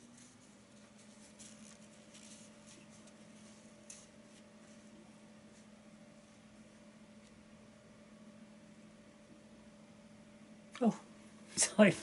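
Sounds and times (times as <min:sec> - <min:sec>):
soft rustles: 0:00.0 - 0:05.8
steady low hum: 0:00.0 - 0:12.0.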